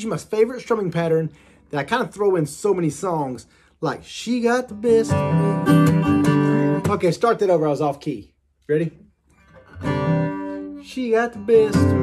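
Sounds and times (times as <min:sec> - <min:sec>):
person singing: 0:04.7 - 0:07.0, 0:10.4 - 0:12.0
acoustic guitar chord ringing: 0:04.8 - 0:07.0, 0:09.4 - 0:12.0.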